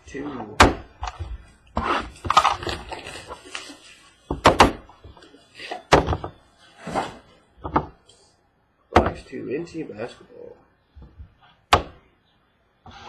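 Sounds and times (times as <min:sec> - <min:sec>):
cardboard packaging tearing rustle: 0:01.8 - 0:04.2.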